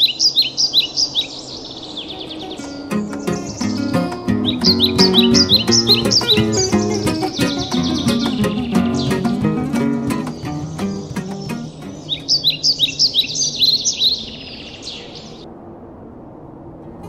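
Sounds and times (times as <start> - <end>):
bird chirping: 0.0 - 15.4
plucked guitar music: 2.2 - 12.4.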